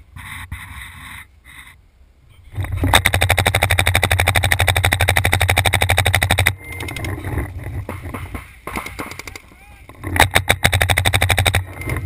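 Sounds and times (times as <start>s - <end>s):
scattered pops: 2.6s - 12.0s
paintball marker rapid firing: 2.8s - 6.6s, 7.8s - 12.0s.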